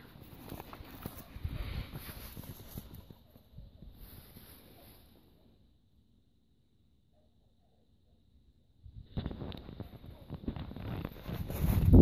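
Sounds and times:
footsteps on dry grass: 0:00.3 - 0:03.2.

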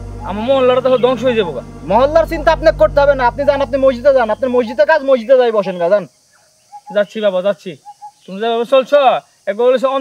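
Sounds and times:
low hum: 0:00.0 - 0:05.7
person talking: 0:00.2 - 0:05.8.

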